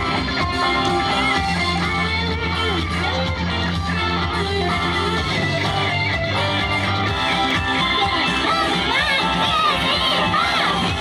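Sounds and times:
live pop-rock electric guitars: 0:00.0 - 0:11.0.

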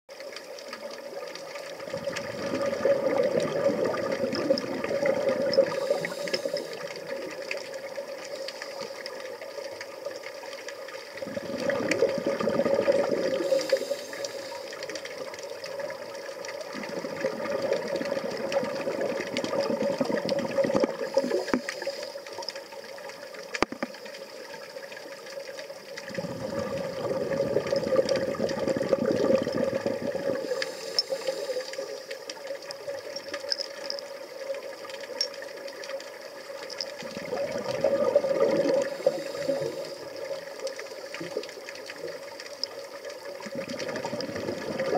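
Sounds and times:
underwater hum: 0:00.1 - 0:44.9
regulator bubbles exhaled: 0:01.1 - 0:09.2, 0:11.0 - 0:22.5, 0:26.0 - 0:33.2, 0:36.8 - 0:44.9
hissing inhalations: 0:05.6 - 0:07.2, 0:13.3 - 0:15.0, 0:21.0 - 0:22.4, 0:30.3 - 0:32.2, 0:38.7 - 0:40.2.

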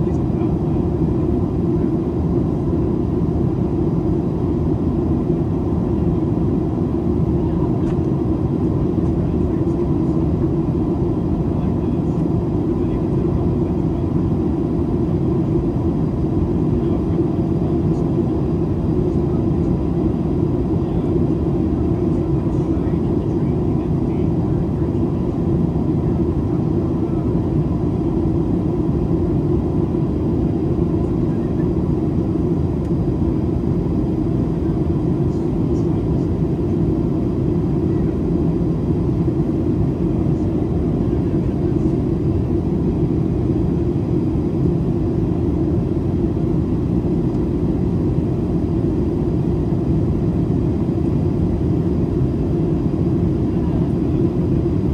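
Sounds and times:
airplane cabin rumble: 0:00.0 - 0:54.9.

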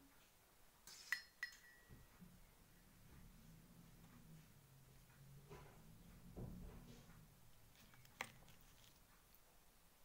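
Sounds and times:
glass clinking: 0:00.9 - 0:02.1.

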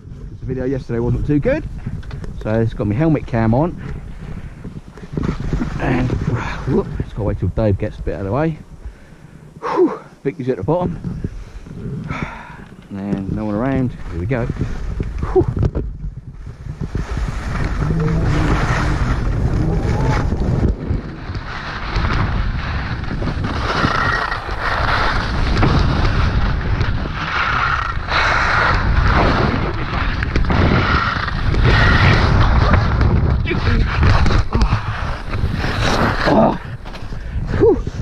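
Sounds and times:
wind buffeting microphone: 0:00.0 - 0:38.0
skis scraping over hard snow: 0:05.0 - 0:08.4, 0:12.9 - 0:15.1, 0:16.3 - 0:38.0.

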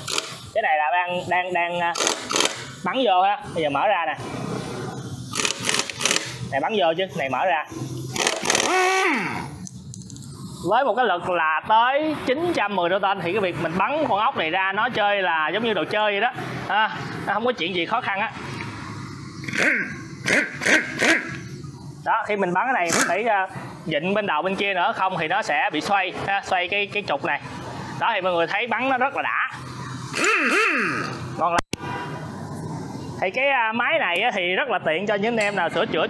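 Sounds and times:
air impact wrench hammering: 0:00.0 - 0:00.6, 0:01.9 - 0:02.8, 0:05.2 - 0:06.6, 0:07.7 - 0:09.6, 0:19.1 - 0:22.0, 0:22.8 - 0:23.8, 0:30.0 - 0:31.3
sharp air hissing bursts: 0:00.0 - 0:11.0, 0:16.3 - 0:24.0, 0:27.4 - 0:33.2.

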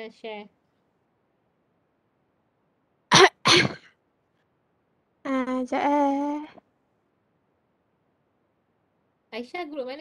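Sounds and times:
person coughing: 0:03.1 - 0:03.9.

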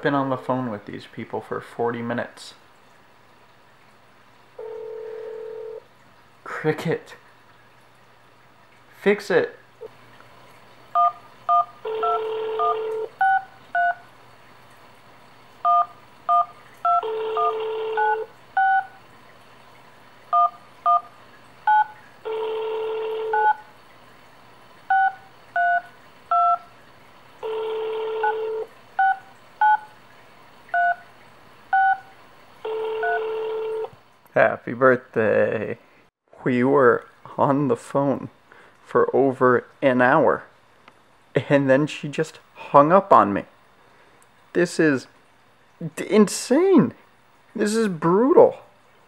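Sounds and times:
long low phone tone: 0:04.6 - 0:05.9, 0:11.0 - 0:14.0, 0:15.6 - 0:18.9, 0:21.7 - 0:23.6, 0:27.4 - 0:29.8, 0:32.7 - 0:33.9
phone keypad beeps: 0:11.0 - 0:14.0, 0:15.6 - 0:19.0, 0:20.3 - 0:21.1, 0:21.7 - 0:23.6, 0:24.9 - 0:26.6, 0:28.0 - 0:29.9, 0:30.8 - 0:31.0, 0:31.7 - 0:32.1, 0:32.7 - 0:33.9.

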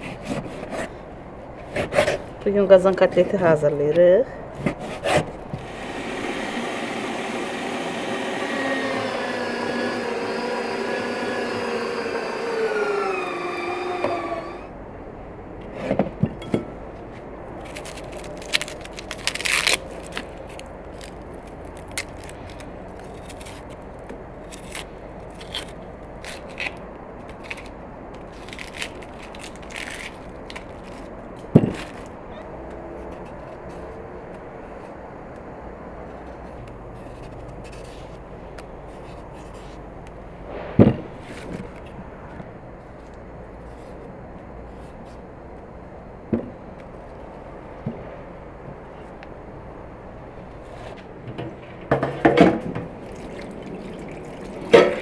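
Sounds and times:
onion skin scraping and crackling: 0:17.5 - 0:32.2.

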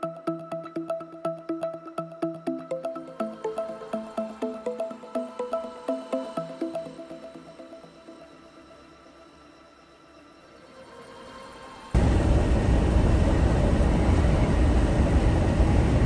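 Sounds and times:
background music: 0:00.0 - 0:13.9
engine and tyre rumble: 0:12.0 - 0:16.0.

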